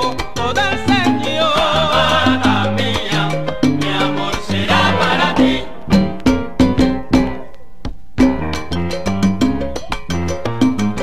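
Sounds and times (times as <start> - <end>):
salsa band music: 0.0 - 11.0.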